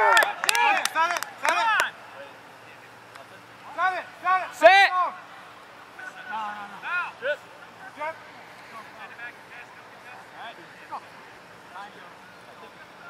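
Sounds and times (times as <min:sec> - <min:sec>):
hand claps: 0:00.0 - 0:01.9
men shouting: 0:00.0 - 0:02.4, 0:03.7 - 0:11.2.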